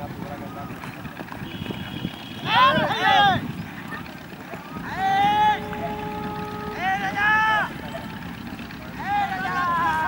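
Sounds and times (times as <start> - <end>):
wind noise on microphone: 1.3 - 4.0.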